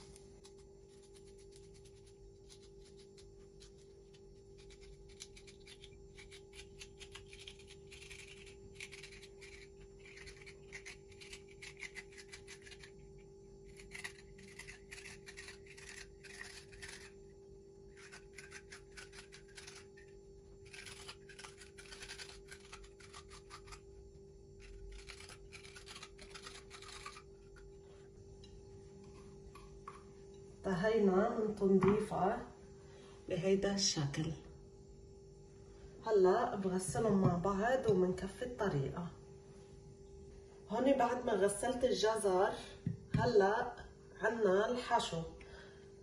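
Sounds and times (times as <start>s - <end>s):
corer scraping a carrot: 13.6s - 17.2s, 17.9s - 23.9s, 24.6s - 28.1s.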